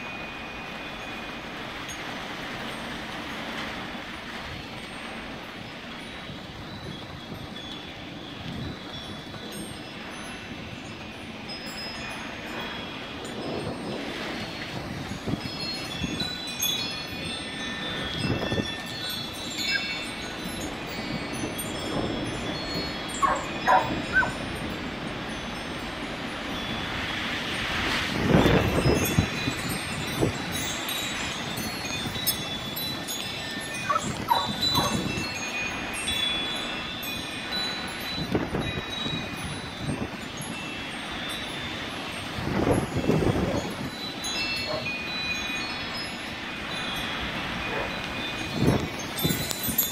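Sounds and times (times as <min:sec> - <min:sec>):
gusty wind: 0:00.0 - 0:49.9
wind chimes ringing: 0:00.0 - 0:49.9.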